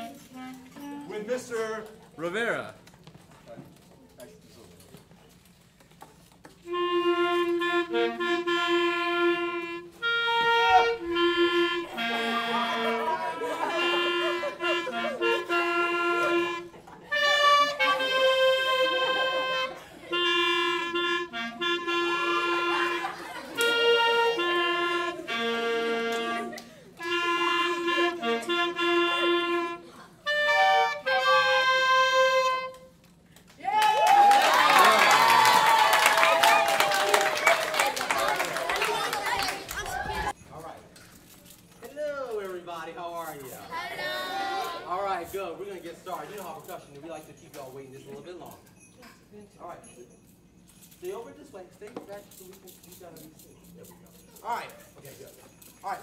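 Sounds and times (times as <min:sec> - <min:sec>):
clarinets and flute playing: 0:00.0 - 0:01.3, 0:06.6 - 0:33.0
people clapping: 0:33.4 - 0:40.3
people cheering: 0:33.6 - 0:40.3.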